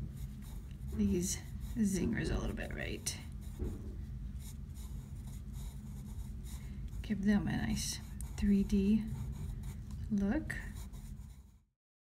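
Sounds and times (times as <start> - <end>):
pencil scratching on paper: 0.0 - 3.8, 4.4 - 11.7.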